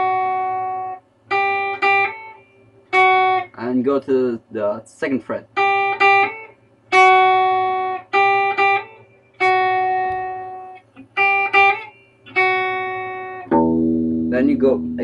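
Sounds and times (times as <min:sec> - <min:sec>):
clean electric guitar picking: 0:00.0 - 0:03.6, 0:05.6 - 0:15.0.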